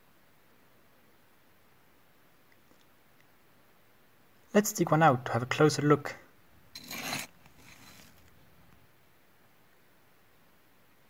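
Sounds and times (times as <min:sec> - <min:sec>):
grit rustling: 0:06.6 - 0:08.8
tool scraping gravelly sand: 0:06.8 - 0:08.3.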